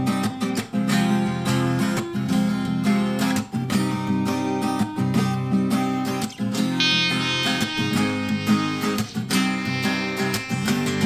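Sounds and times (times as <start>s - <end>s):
acoustic guitar strumming: 0.0s - 11.0s
clarinet holding long notes: 6.8s - 11.0s.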